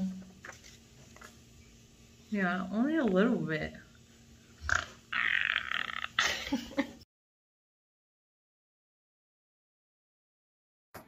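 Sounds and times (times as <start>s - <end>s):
woman laughing breathily: 6.2s - 7.0s.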